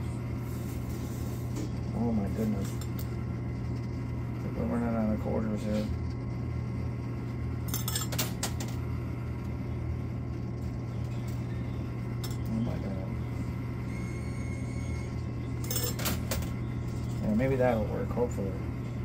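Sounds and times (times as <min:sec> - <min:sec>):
low machine hum: 0:00.0 - 0:19.0
coins clinking: 0:07.7 - 0:08.8, 0:15.6 - 0:16.5.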